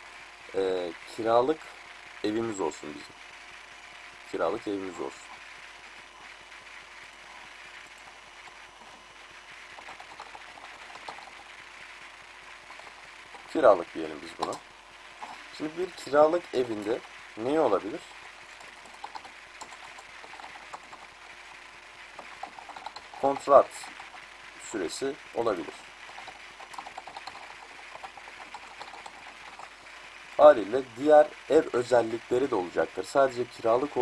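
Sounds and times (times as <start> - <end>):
faint background hiss: 0.0 - 34.0.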